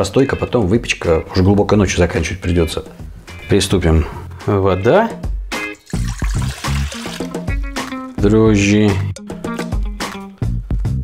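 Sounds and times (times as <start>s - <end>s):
background music: 0.0s - 11.0s
water pouring into metal bowl: 5.8s - 8.0s.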